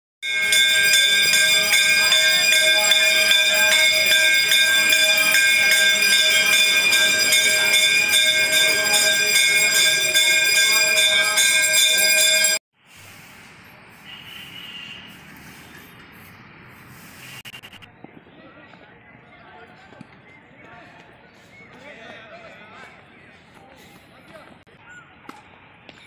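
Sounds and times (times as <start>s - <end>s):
temple bells ringing: 0.2s - 12.6s.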